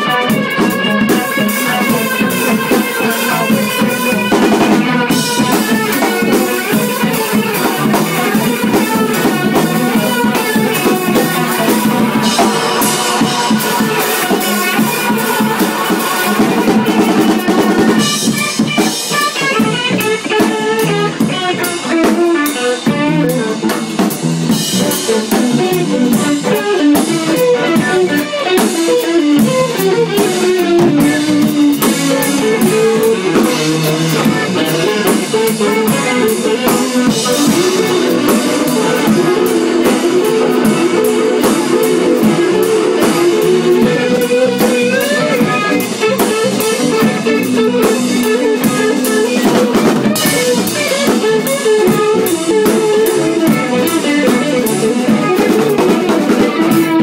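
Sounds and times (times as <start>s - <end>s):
drum kit playing: 0.0s - 57.0s
electric guitars: 0.0s - 57.0s
cymbals and drum hits: 0.2s - 19.8s, 30.2s - 53.6s.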